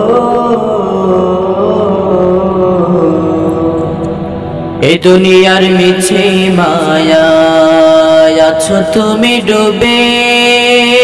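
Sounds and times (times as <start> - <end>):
chant-like vocal drone: 0.0 - 11.0
person singing: 0.0 - 11.0.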